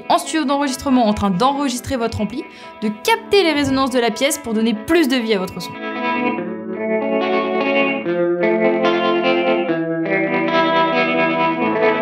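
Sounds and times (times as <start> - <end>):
electric guitar ringing chords: 0.0 - 12.0.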